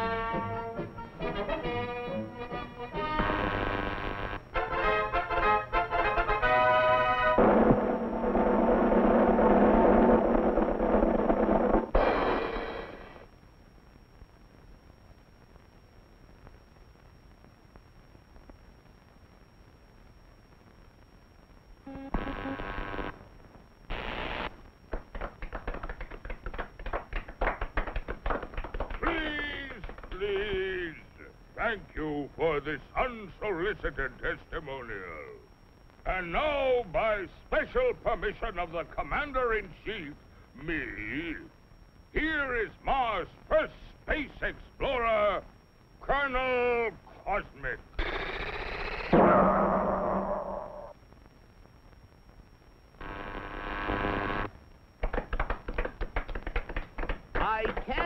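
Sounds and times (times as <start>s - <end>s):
timpani: 4.6s - 13.2s
dense noisy sustained sound: 6.6s - 13.3s
quick uneven taps and clicks: 24.9s - 30.6s, 55.0s - 58.0s
short buzzy cartoon blast: 48.0s - 50.9s
falling voice-like call: 48.0s - 51.0s.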